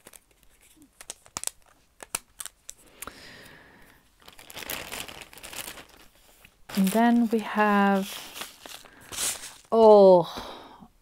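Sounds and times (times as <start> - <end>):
plastic packaging crinkling: 0.0 - 9.8.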